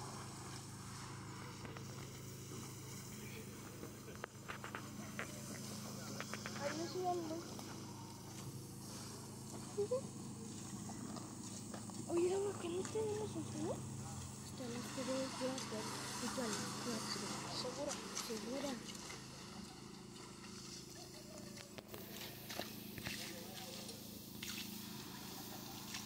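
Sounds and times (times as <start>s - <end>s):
distant people talking: 0.0s - 26.0s
low machine hum: 0.0s - 26.0s.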